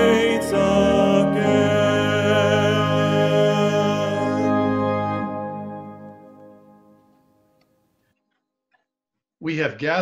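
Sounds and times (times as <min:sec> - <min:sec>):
sustained organ chord: 0:00.0 - 0:07.6.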